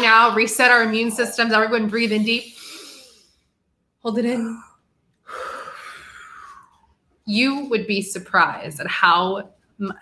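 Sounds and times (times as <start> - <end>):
person exhaling deeply: 5.2 - 6.8.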